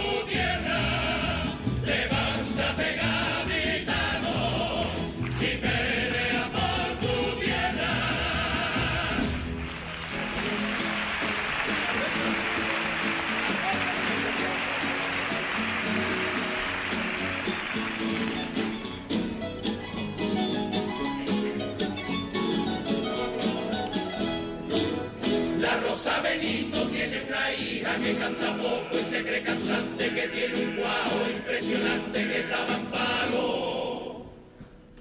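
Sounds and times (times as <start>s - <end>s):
choir singing: 0.0s - 9.6s, 25.3s - 34.5s
audience applauding: 4.8s - 6.3s, 8.5s - 19.1s
plucked string band playing: 14.0s - 25.9s.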